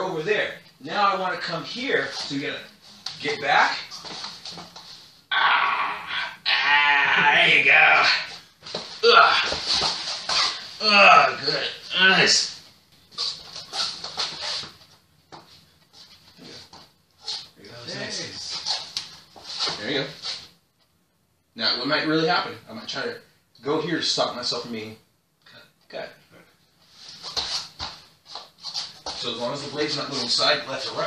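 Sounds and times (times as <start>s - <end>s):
shuffling on foam mats: 1.9s - 5.2s, 13.1s - 20.6s, 26.8s - 31.0s.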